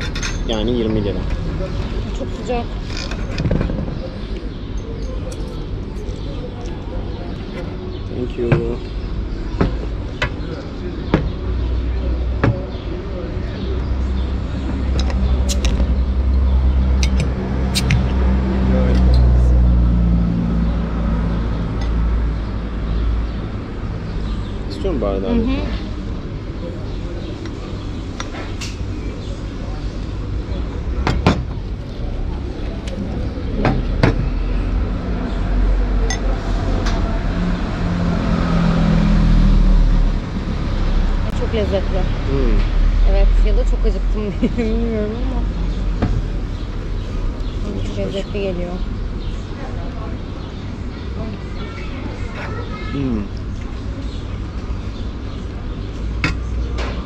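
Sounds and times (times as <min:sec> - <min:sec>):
street traffic rumble: 0:00.0 - 0:57.0
vehicle passing: 0:14.0 - 0:23.2, 0:32.0 - 0:51.5
voice humming: 0:52.9 - 0:53.4.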